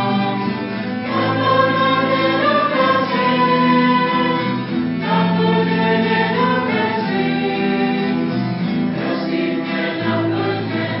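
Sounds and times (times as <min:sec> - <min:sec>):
children singing a hymn: 0:00.0 - 0:11.0.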